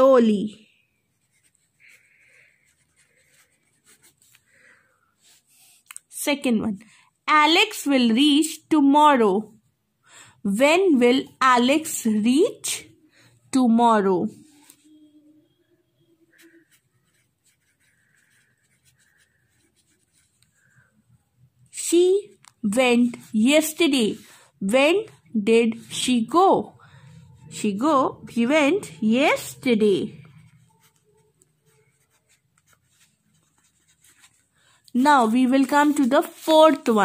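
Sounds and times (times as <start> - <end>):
pencil scratching on paper: 0.0 - 5.8, 16.3 - 20.9, 22.2 - 28.0, 28.8 - 37.0.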